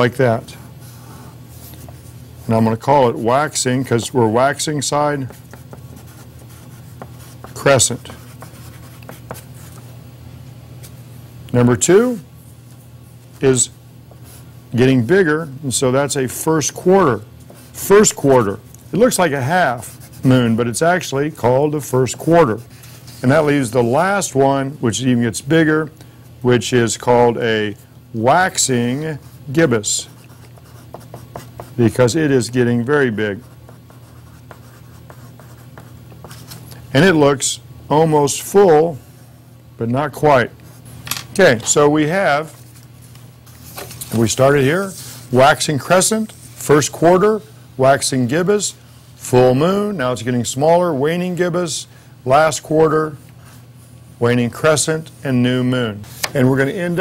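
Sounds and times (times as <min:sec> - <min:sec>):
steady low hum: 0:00.0 - 0:57.0
chalk writing on paper: 0:05.2 - 0:09.6, 0:30.0 - 0:31.8, 0:33.4 - 0:36.6.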